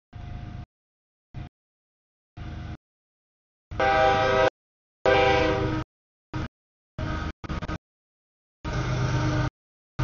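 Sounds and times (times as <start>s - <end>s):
train noise: 2.4s - 2.8s, 3.7s - 7.8s, 8.6s - 9.5s
locomotive air horn blast: 3.7s - 5.8s.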